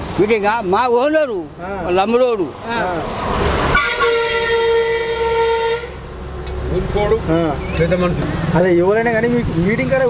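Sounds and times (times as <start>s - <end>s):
vehicle horn steady note: 3.7s - 6.0s.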